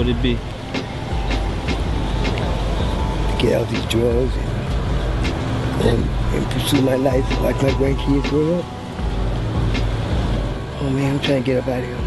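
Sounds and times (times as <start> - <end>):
passing vehicles rumbling: 0.0 - 12.0.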